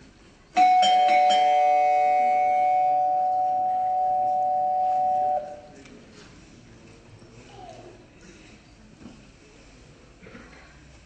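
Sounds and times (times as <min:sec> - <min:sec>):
doorbell ringing: 0:00.6 - 0:05.7.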